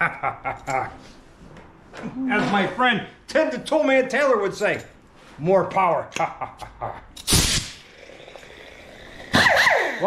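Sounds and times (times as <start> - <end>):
person laughing: 0.0 - 1.0, 6.2 - 7.1
pneumatic tool air hiss: 7.2 - 7.8.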